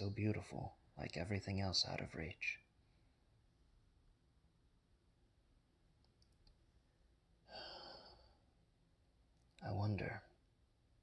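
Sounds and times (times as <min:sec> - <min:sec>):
person sighing: 0:07.5 - 0:08.4.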